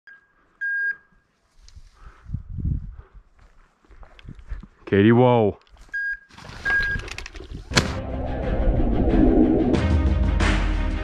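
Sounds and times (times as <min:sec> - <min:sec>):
electronic beep: 0:06.0 - 0:07.1.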